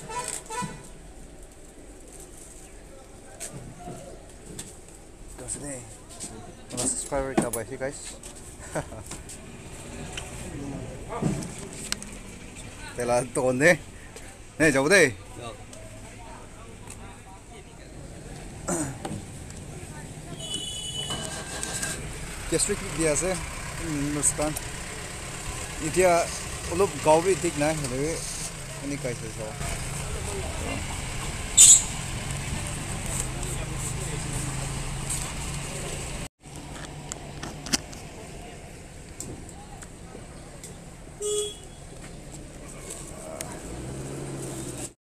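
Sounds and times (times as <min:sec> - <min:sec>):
street traffic: 0:00.0 - 0:45.0
vehicle horn toot: 0:20.4 - 0:21.6, 0:31.6 - 0:32.0, 0:41.2 - 0:41.8
engine running low rumble: 0:21.3 - 0:41.2.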